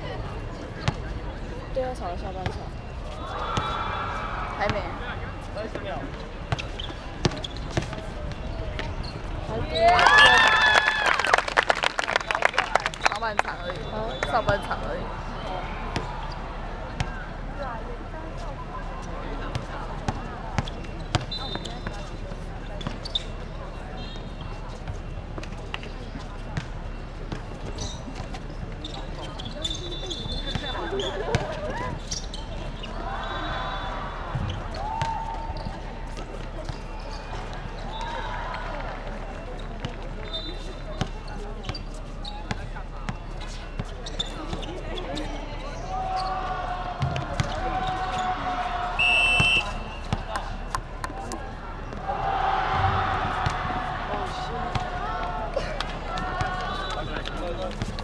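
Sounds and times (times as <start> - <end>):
players' voices calling out: 2.4 - 11.4, 29.0 - 58.0
basketball bouncing: 6.5 - 9.0, 47.0 - 47.6.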